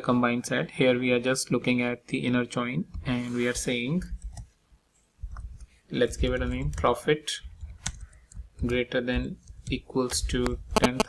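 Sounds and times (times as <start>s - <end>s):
keyboard and mouse clicks: 5.3s - 6.9s, 7.5s - 8.8s.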